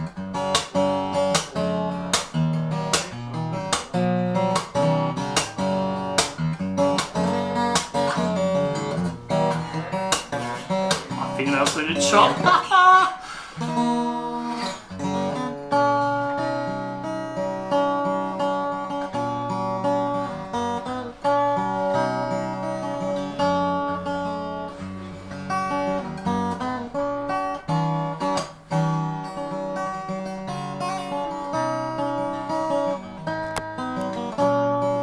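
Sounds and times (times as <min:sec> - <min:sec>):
acoustic guitar strummed: 0:00.0 - 0:35.0.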